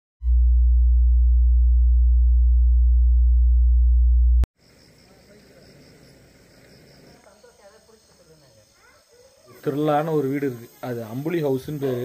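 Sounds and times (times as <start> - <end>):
low electronic sine tone: 0.2 - 4.5.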